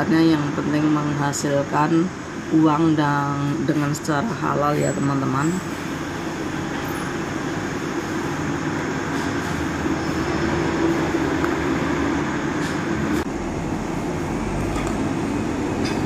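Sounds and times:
busy road traffic: 0.0 - 16.0.

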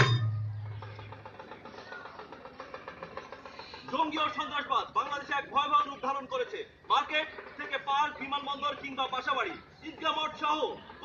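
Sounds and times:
loud drum stroke booming: 0.0 - 1.4
faint voices: 0.0 - 11.0.

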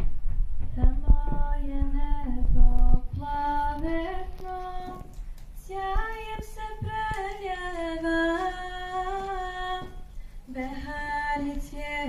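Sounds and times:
woman singing: 0.8 - 12.0.

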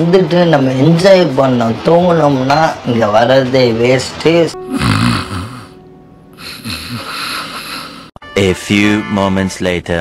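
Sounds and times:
man snoring: 4.7 - 5.8, 6.4 - 8.2.

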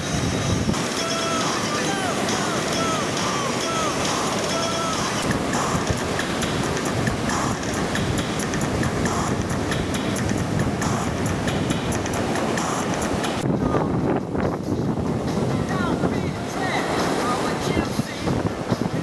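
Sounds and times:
wind buffeting microphone: 0.0 - 1.0, 3.9 - 19.0
ocean surf breaking: 0.0 - 19.0
curved whistling notes: 0.9 - 6.0.

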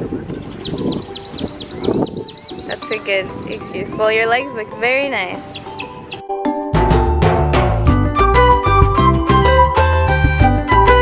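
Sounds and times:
bird chirping: 0.1 - 3.9, 5.4 - 6.2.

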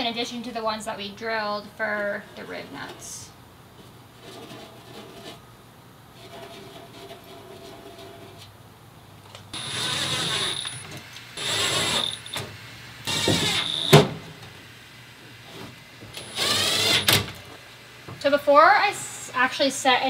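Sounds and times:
cordless drill whining: 9.6 - 12.4, 13.1 - 14.0, 16.2 - 17.3
drill click: 9.6 - 12.4, 13.1 - 14.1, 16.2 - 17.4.

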